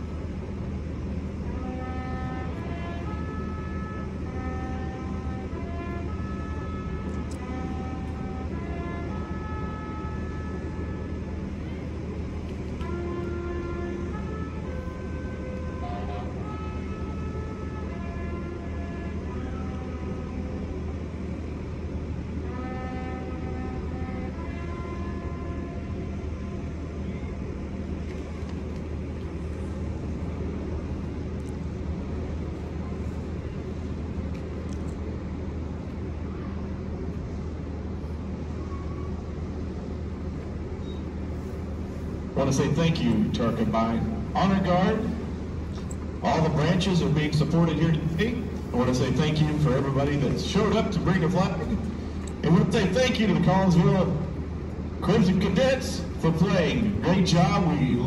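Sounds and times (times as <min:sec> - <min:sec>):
brass band playing slow melody: 0:00.0 - 0:29.8, 0:41.3 - 0:58.0
steady low rumble: 0:00.0 - 0:58.0.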